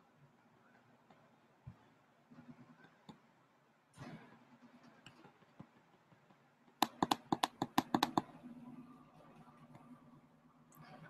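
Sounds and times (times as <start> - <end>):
typing on a computer keyboard: 6.8 - 8.3.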